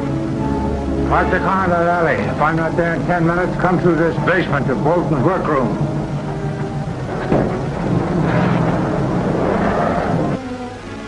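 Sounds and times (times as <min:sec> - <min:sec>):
car engine driving off: 0:00.0 - 0:11.0.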